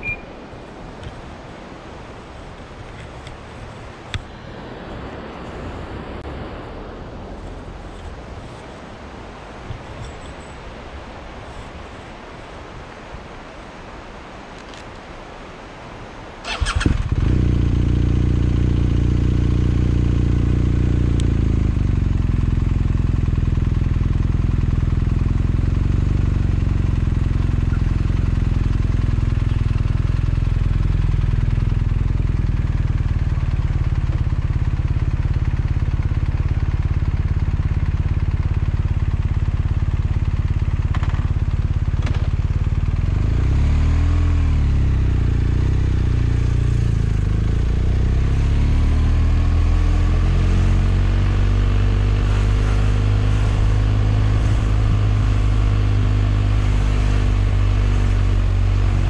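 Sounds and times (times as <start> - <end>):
motorcycle engine starting and idling: 16.4 - 59.0.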